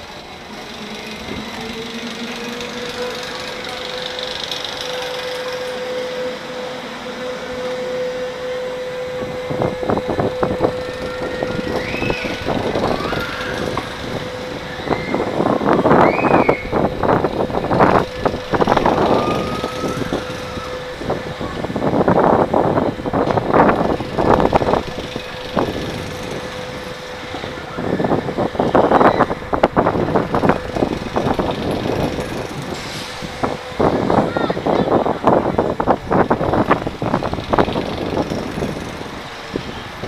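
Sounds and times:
steady hum: 0.0 - 34.3
high rising-and-falling cries: 0.1 - 40.0
wind rushing over microphone: 6.0 - 40.0.

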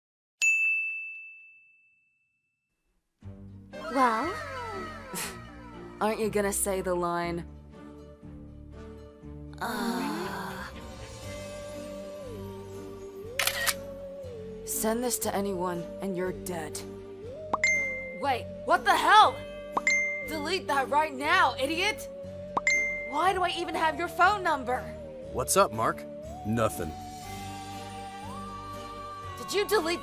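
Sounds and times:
high ding: 0.4 - 2.6, 17.6 - 18.2, 19.8 - 20.5, 22.6 - 23.3
slow background music: 3.2 - 30.0
camera shutter click: 13.4 - 13.8.

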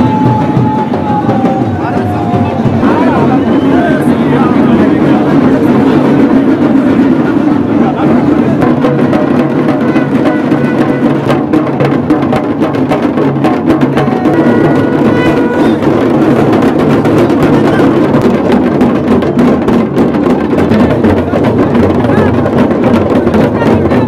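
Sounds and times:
dhol drums: 0.0 - 24.0.

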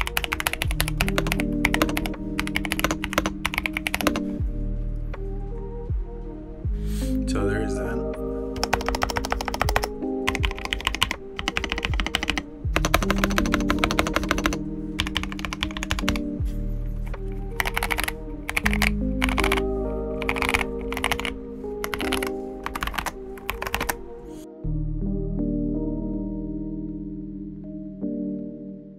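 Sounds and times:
typing on mechanical keyboard: 0.0 - 4.3, 8.6 - 16.2, 17.6 - 24.0.

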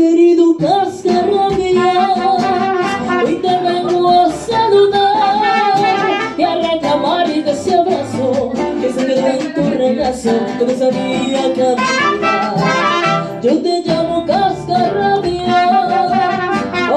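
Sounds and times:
mariachi band playing: 0.0 - 16.9.

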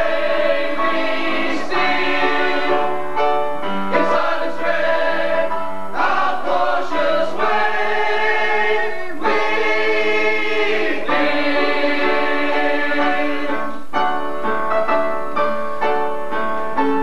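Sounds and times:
chorus singing held chords: 0.0 - 14.0.

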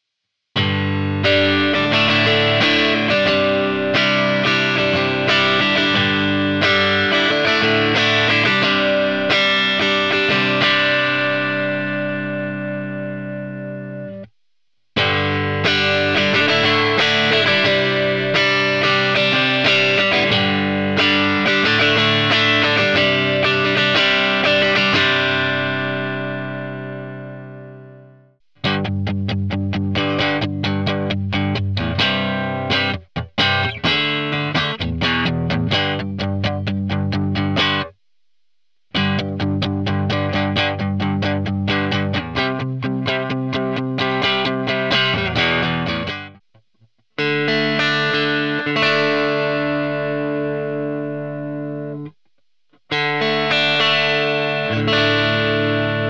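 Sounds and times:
electric guitar played with a pick: 0.6 - 14.3, 15.0 - 37.9, 38.9 - 46.6, 47.2 - 52.2, 52.8 - 56.0.

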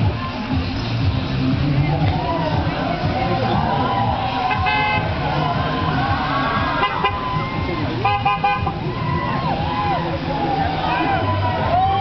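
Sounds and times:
passing traffic rumble: 0.0 - 12.0
voices: 0.0 - 12.0
vehicle horn tooting: 4.4 - 5.2, 6.8 - 7.3, 7.9 - 8.8.

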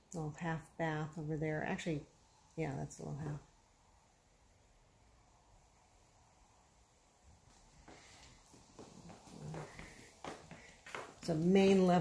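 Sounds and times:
footsteps on hardwood floor: 7.4 - 12.0.

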